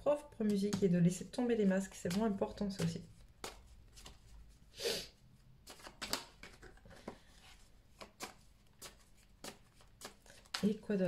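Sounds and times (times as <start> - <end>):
card slaps while shuffling: 2.0 - 4.2, 5.7 - 6.7.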